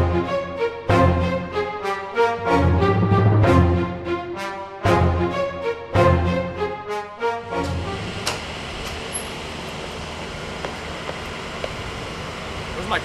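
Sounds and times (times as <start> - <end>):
music cue: 0.0 - 8.3.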